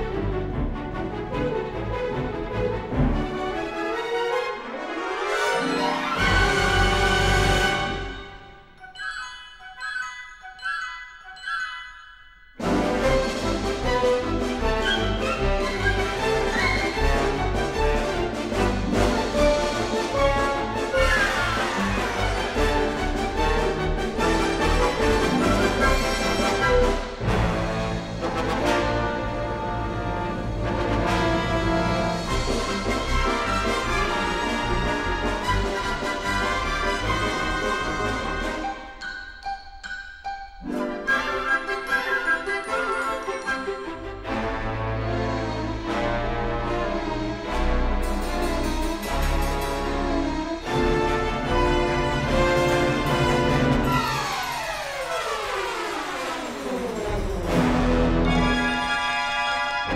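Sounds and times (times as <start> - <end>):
dramatic orchestral music: 0.0 - 9.2, 12.5 - 59.9.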